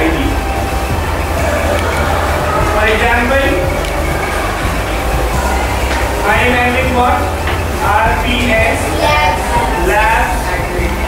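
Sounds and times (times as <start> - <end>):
low rumble of room noise: 0.0 - 11.0.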